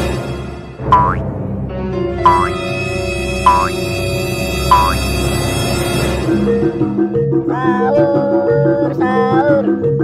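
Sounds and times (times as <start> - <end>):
background music: 0.0 - 10.0
cartoon spring boing: 0.9 - 1.2, 2.3 - 2.6, 3.5 - 3.8.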